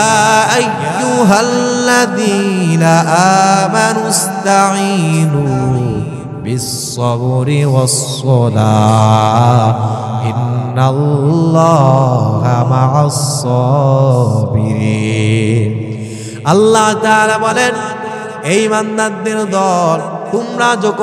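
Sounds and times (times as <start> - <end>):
man chanting melodically: 0.0 - 21.0.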